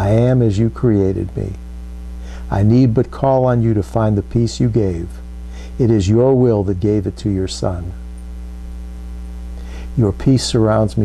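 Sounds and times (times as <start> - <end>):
electrical mains hum: 0.0 - 11.0
soft intake of breath: 2.1 - 2.5, 5.4 - 5.8, 9.5 - 10.0.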